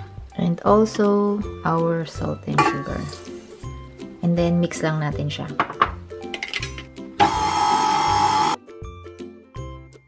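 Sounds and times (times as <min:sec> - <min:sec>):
light plucked background music: 0:00.0 - 0:10.0
stand mixer motor running: 0:07.2 - 0:08.6.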